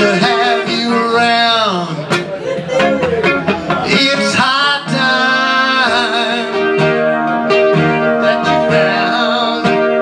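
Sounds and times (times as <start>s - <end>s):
acoustic guitar: 0.0s - 10.0s
man singing: 0.0s - 10.0s.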